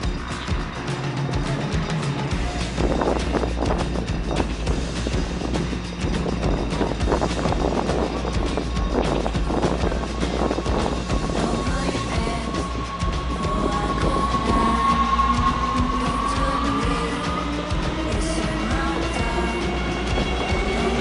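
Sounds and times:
music: 0.0 - 21.0
thin steady whine: 0.0 - 21.0.

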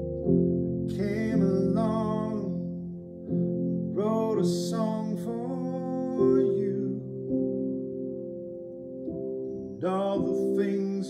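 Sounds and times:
piano playing sustained chords: 0.0 - 11.0
man singing: 0.9 - 2.7, 3.9 - 7.1, 9.8 - 11.0.

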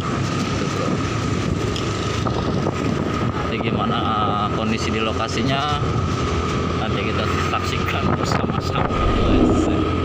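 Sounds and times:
wind noise on microphone: 0.0 - 4.3, 7.8 - 10.0.

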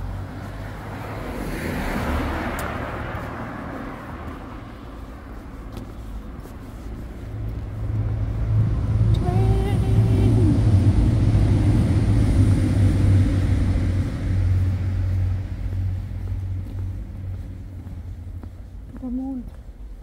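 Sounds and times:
car passing by: 0.0 - 18.8
steady low rumble: 0.0 - 20.0.

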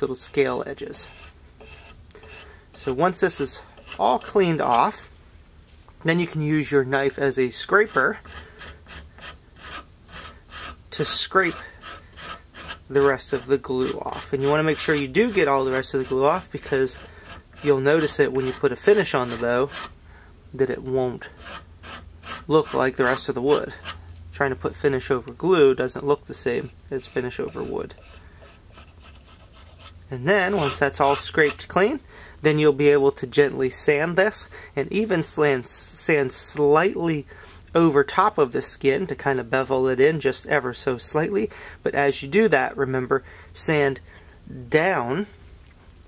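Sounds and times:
low steady hum: 0.0 - 46.0
knife blade scraping wood: 0.2 - 4.9, 7.8 - 20.0, 21.3 - 24.0, 26.4 - 31.7
knife scraping glue off wood: 1.0 - 4.8.

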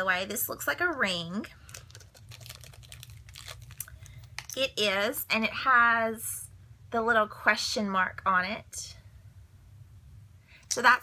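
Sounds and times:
wrapper crinkling and clicking: 0.9 - 4.6.

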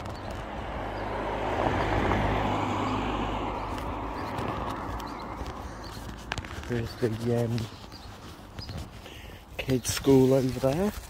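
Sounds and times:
car passing: 0.0 - 7.0.

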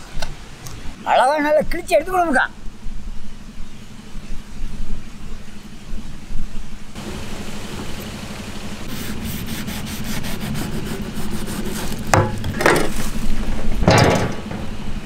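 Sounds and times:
knife scraping fish skin: 9.1 - 12.1.

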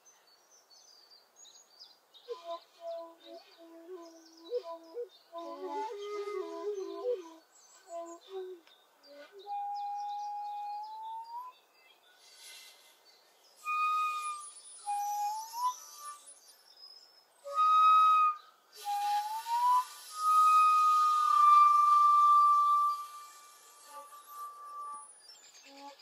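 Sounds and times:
bamboo flute playing: 2.3 - 11.6, 13.6 - 16.6, 17.4 - 26.0
breathy air noise: 12.1 - 13.5.

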